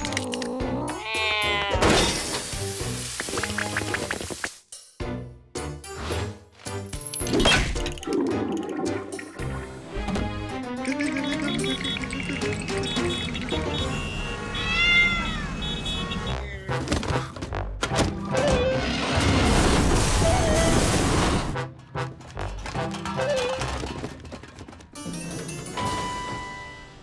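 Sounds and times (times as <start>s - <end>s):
cartoon cat vocal noises: 0.0s - 1.9s
cartoon background music: 0.0s - 14.6s, 15.4s - 24.2s
comic sound effects: 10.8s - 14.6s.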